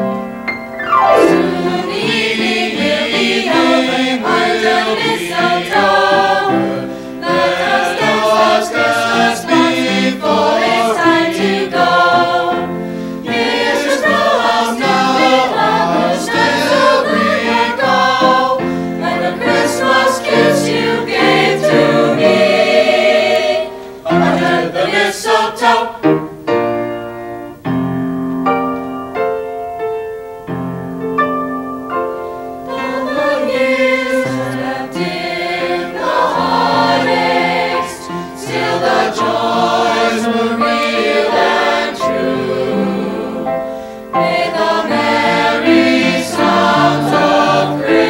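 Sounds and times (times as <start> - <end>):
piano accompaniment: 0.0 - 48.0
mixed choir singing: 0.9 - 26.2, 32.6 - 48.0.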